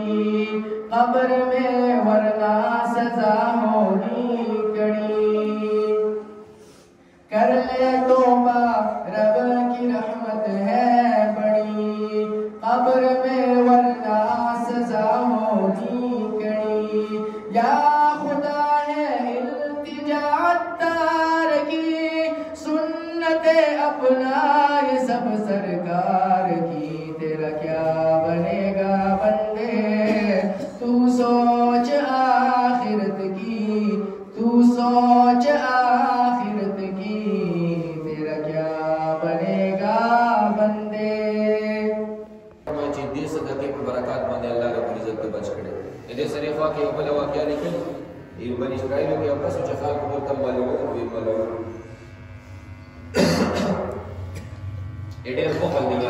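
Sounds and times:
man chanting into a microphone: 0:00.0 - 0:52.2
low steady hum: 0:25.2 - 0:56.0
throat clearing: 0:30.0 - 0:30.8, 0:53.1 - 0:54.7
man coughing: 0:30.0 - 0:31.0, 0:53.1 - 0:54.7.

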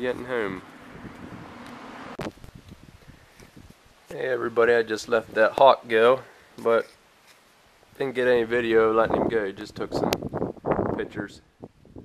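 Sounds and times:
wind on microphone: 0:00.0 - 0:03.9, 0:08.8 - 0:12.0
uneven rustle: 0:00.0 - 0:04.1.

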